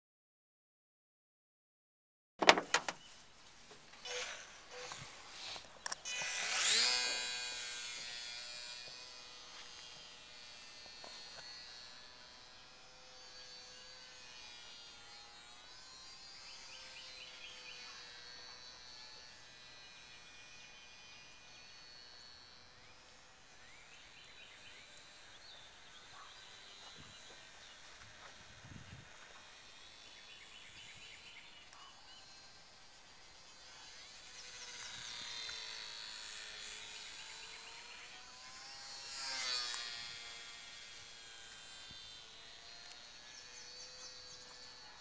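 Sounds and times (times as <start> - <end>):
electric motor and propeller whine: 2.5 - 45.0.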